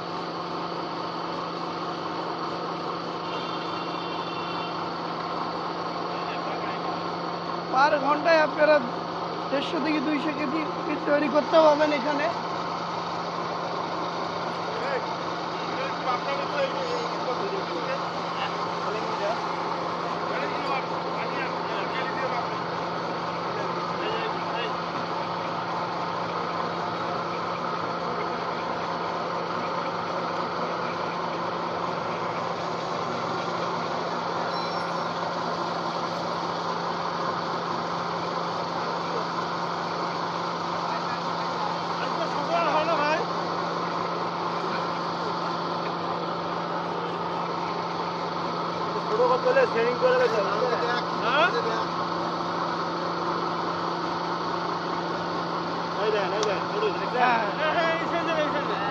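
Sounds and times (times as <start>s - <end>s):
pellet mill droning: 0.0s - 58.9s.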